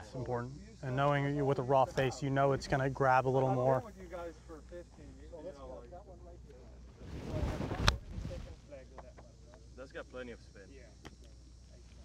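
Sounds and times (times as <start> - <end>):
rushing wind-like noise: 7.0 - 8.5.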